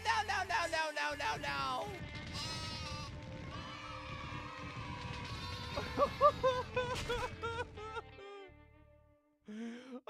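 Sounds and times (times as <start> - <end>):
background music: 0.0 - 9.9.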